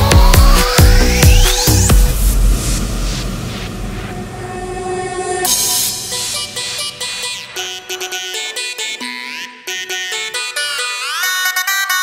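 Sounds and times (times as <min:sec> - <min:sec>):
held synth chord: 0:01.8 - 0:09.2.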